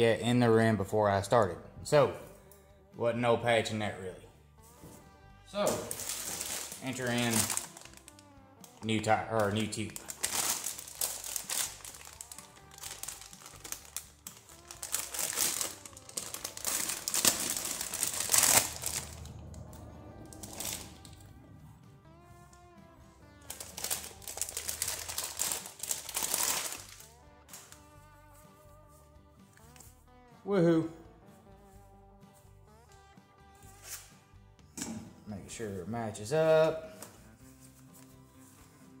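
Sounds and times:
quiet background music: 0.0s - 39.0s
plastic bag crinkling: 5.6s - 19.3s, 20.3s - 21.2s, 23.5s - 27.8s.

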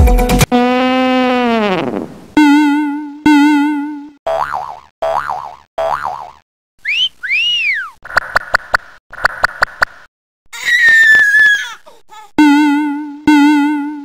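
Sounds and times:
falling whistle: 6.8s - 8.0s
rising and falling whistles: 6.8s - 8.0s.

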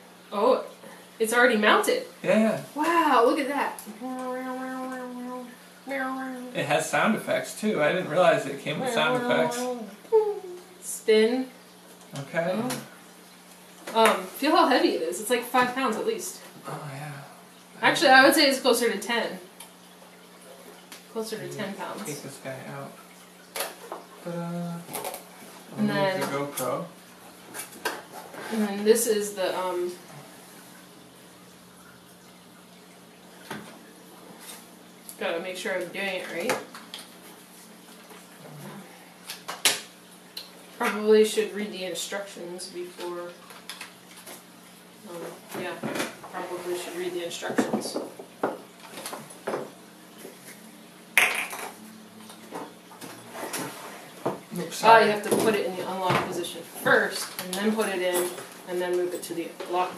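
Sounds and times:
faint steady hiss: 0.0s - 59.9s.

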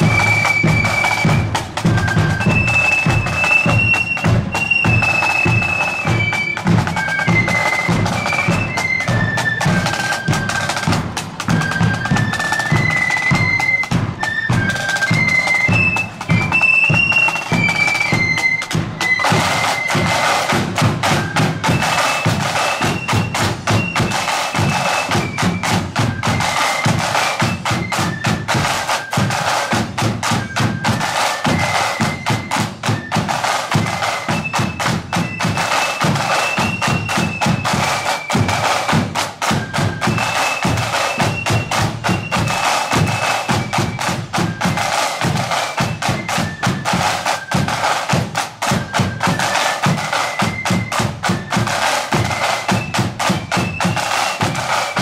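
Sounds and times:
shrill flutes playing melody: 0.0s - 55.0s
snare drums: 0.0s - 55.0s.

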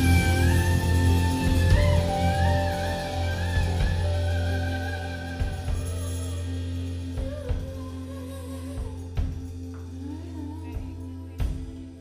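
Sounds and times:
drum strokes: 0.0s - 10.2s
wavering melody line: 0.0s - 11.4s
held low bass note: 0.0s - 12.0s.

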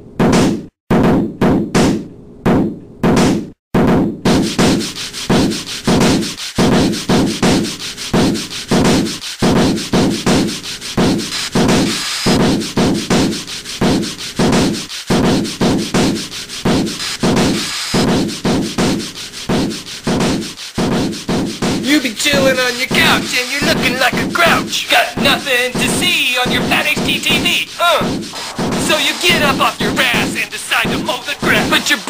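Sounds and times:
sanding strokes on wood: 4.4s - 32.0s.

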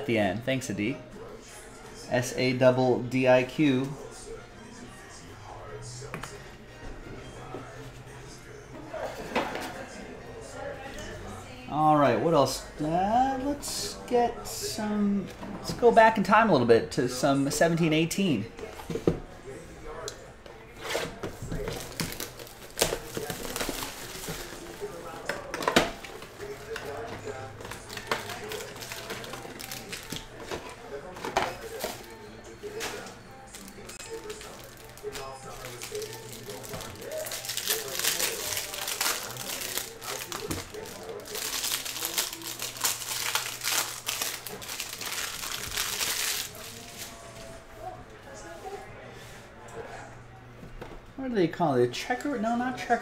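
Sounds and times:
plastic packaging crinkling: 33.6s - 47.1s.

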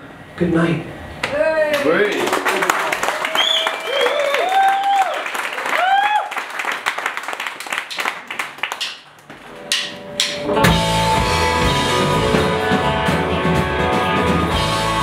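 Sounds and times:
audience clapping and cheering: 1.7s - 9.3s
rock band playing: 9.6s - 15.0s.

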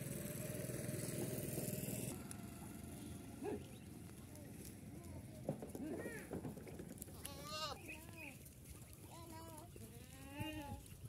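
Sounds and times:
goats bleating: 7.2s - 8.0s.

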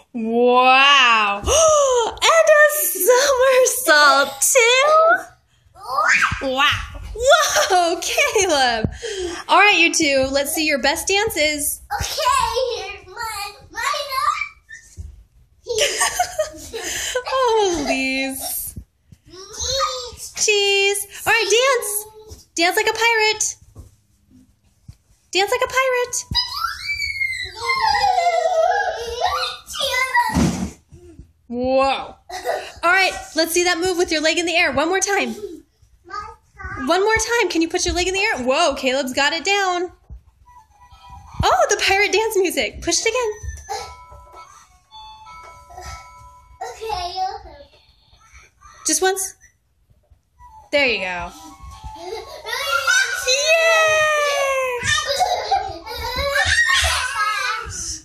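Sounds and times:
children laughing and squealing: 26.2s - 30.4s, 51.7s - 58.0s.

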